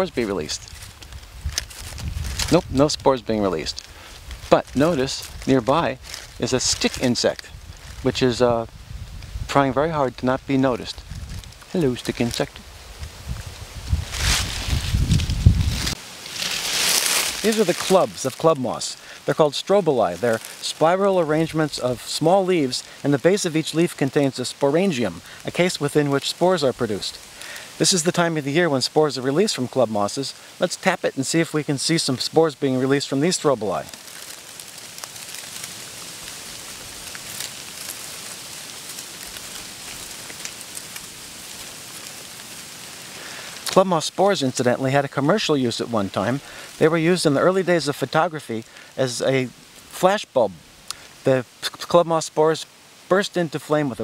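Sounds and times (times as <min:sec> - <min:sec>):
rustling hiss: 0:00.0 - 0:54.0
wind buffeting microphone: 0:00.6 - 0:05.8, 0:06.9 - 0:09.9, 0:10.9 - 0:16.0.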